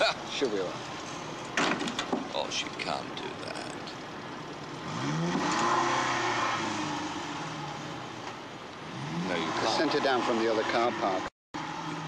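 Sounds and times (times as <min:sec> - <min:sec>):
car engine revving: 0:04.6 - 0:12.0.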